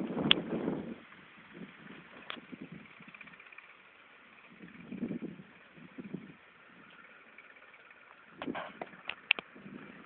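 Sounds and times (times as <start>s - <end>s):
faint tractor engine running: 0.0s - 10.0s.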